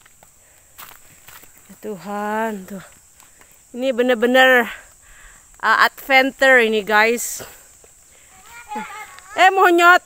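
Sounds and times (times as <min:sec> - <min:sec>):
footsteps on dry leaves and dirt: 0:00.0 - 0:03.7.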